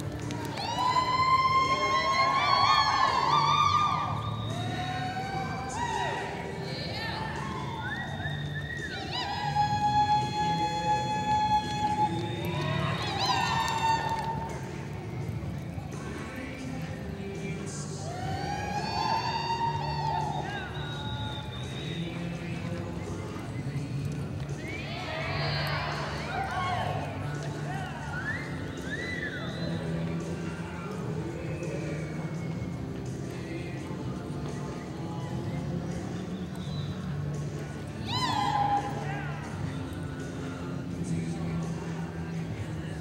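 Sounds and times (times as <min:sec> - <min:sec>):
short whistles: 0:04.0 - 0:04.9, 0:07.6 - 0:14.1, 0:19.9 - 0:22.2, 0:28.1 - 0:30.0, 0:36.2 - 0:37.4.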